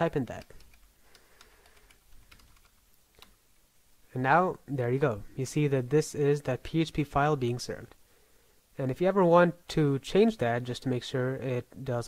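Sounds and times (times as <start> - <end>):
faint keyboard typing: 0.1 - 3.4.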